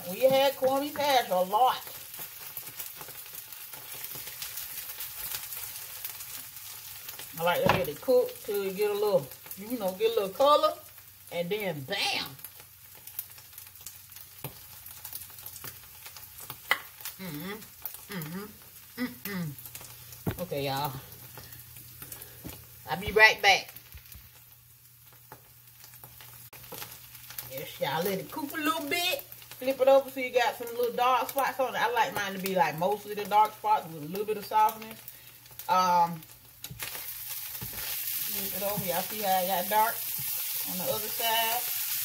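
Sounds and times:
food sizzling in a skillet: 0:00.0 - 0:42.0.

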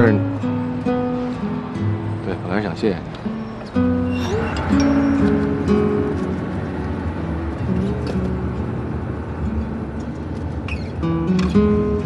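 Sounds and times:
faint acoustic guitar music: 0:00.0 - 0:12.0.

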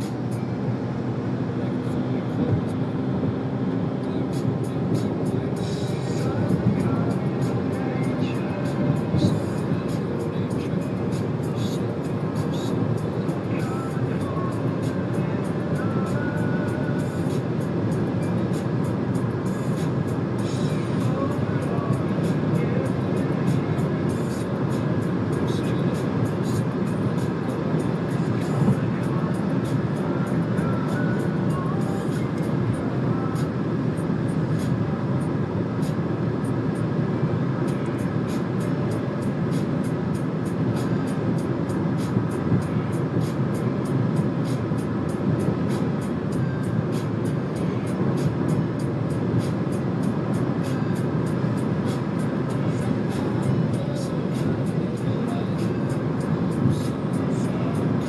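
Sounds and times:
car road and wind noise: 0:00.0 - 0:58.0.

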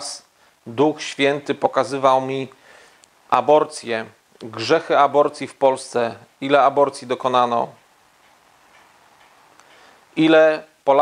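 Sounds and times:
room hiss: 0:00.0 - 0:11.0
faint ticking: 0:02.4 - 0:03.4, 0:04.2 - 0:10.9.

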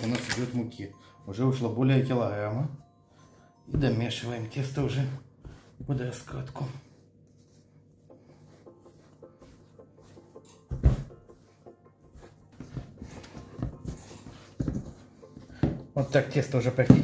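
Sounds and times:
quiet background music: 0:00.0 - 0:17.0
hands kneading dough: 0:02.1 - 0:17.0
dull thumps: 0:10.7 - 0:11.4.

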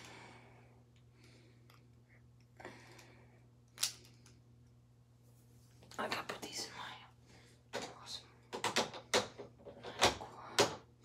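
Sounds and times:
person whispering: 0:05.9 - 0:07.2, 0:07.8 - 0:08.4.

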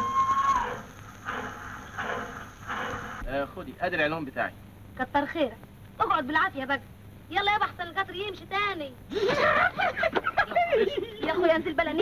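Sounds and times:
train whistle: 0:00.0 - 0:03.0
train noise in surges: 0:00.0 - 0:03.3.

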